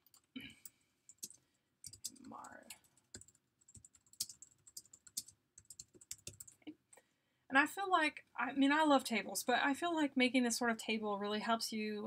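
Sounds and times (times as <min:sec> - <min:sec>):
computer keyboard typing: 0:00.0 - 0:06.6.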